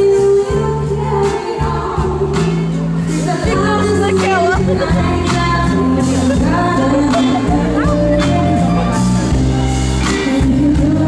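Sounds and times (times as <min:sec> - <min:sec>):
woman singing: 0:00.0 - 0:09.0, 0:10.0 - 0:11.0
band playing: 0:00.0 - 0:11.0.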